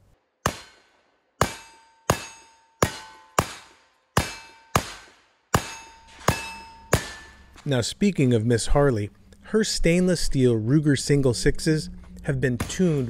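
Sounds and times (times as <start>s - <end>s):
bullet clanging on steel target: 1.4s - 7.6s.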